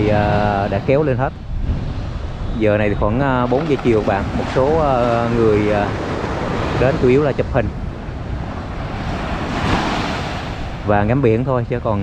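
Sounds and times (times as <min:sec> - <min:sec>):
small waves breaking on beach: 0:00.0 - 0:10.9
wind rumble on microphone: 0:00.0 - 0:12.0.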